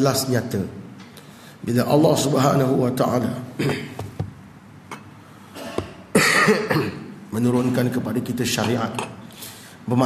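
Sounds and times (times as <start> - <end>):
man coughing: 3.6 - 4.0, 5.6 - 7.8.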